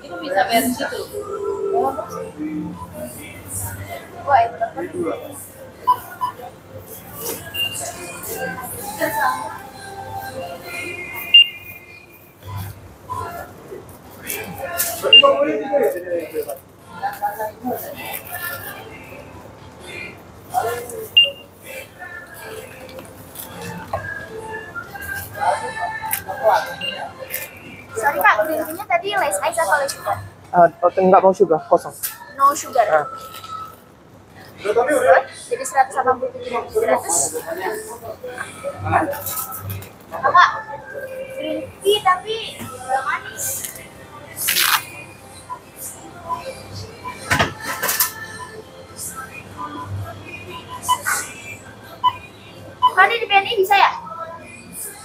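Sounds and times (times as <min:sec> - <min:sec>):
shop chatter: 0:00.0 - 0:55.0
barcode scanner beep: 0:11.3 - 0:11.6.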